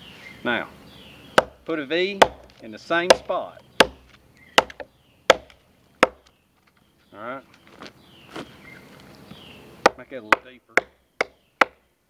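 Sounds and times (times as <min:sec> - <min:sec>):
machete chopping into log: 0:01.4 - 0:01.6, 0:02.2 - 0:06.3.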